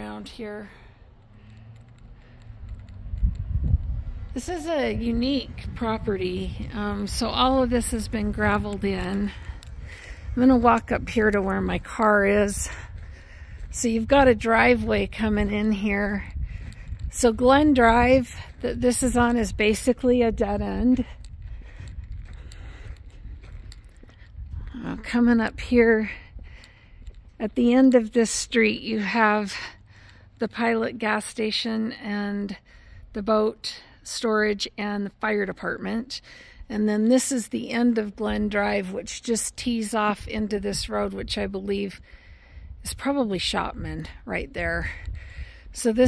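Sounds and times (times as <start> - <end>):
faint footsteps: 0.0 - 30.4
low outdoor hum: 0.0 - 39.6
low rumble on microphone: 0.8 - 27.4.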